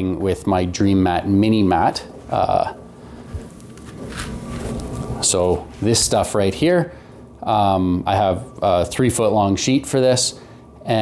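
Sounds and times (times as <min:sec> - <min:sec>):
rubber mat handling: 0:03.2 - 0:05.9.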